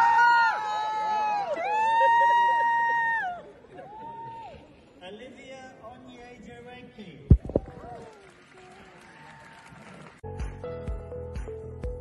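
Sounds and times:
high-pitched cheering scream: 0.0s - 4.6s
voices cheering: 0.0s - 4.7s.

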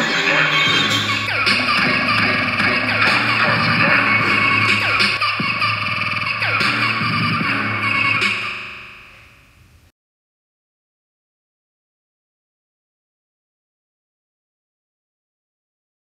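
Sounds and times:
drum machine pattern: 0.0s - 5.8s
sustained synthesizer tones: 0.0s - 6.2s.

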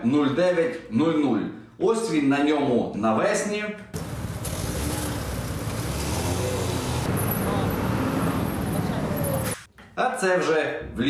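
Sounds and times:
cars driving along road: 4.0s - 9.7s.

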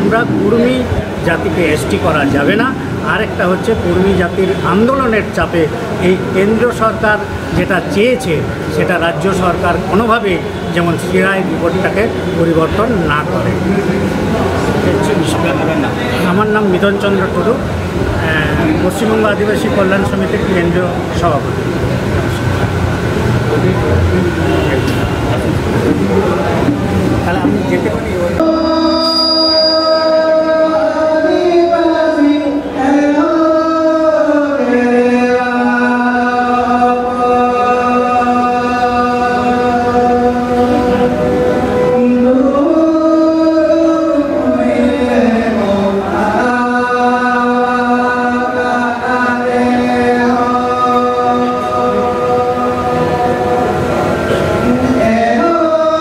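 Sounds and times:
murmuring voices: 0.0s - 56.0s
passing train rumble: 10.6s - 29.5s, 50.2s - 55.8s
men singing folk melody: 28.4s - 56.0s.

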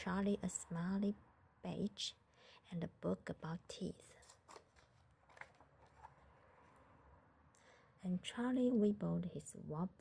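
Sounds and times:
paper page turning: 4.2s - 6.2s.

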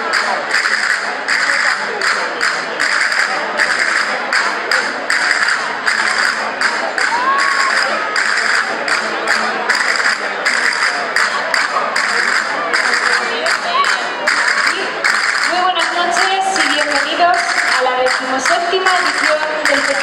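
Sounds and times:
crowd chatter: 0.0s - 20.0s
folk percussion beating a rhythm: 0.0s - 20.0s.

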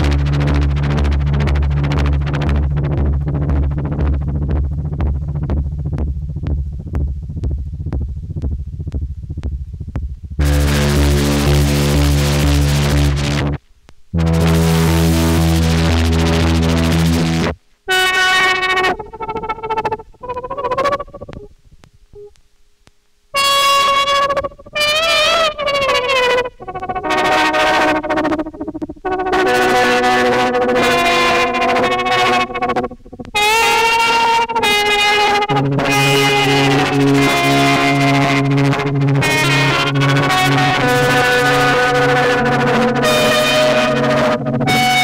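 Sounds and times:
steady low tone: 0.0s - 23.3s, 25.4s - 45.0s
slide guitar gliding notes: 14.2s - 21.5s, 23.4s - 45.0s.

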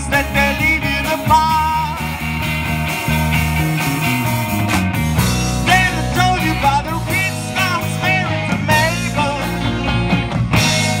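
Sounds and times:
bending guitar lead line: 0.0s - 11.0s
live rock band playing: 0.0s - 11.0s.

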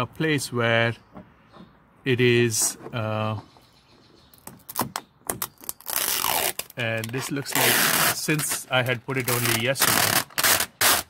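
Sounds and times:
film crackling as it peels: 4.4s - 11.0s.

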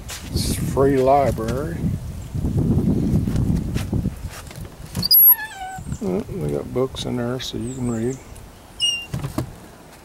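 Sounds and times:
door hinge squeaking: 5.0s - 5.9s, 8.8s - 9.4s.

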